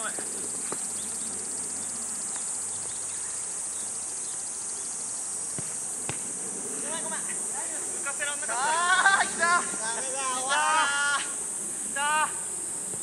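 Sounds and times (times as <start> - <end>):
insects droning: 0.0 - 13.0
football being kicked: 5.6 - 6.3.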